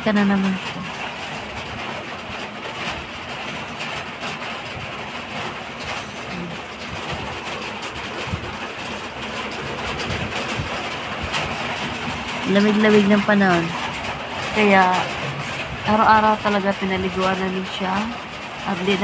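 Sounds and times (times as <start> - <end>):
heavy rain on roof: 0.0 - 19.0.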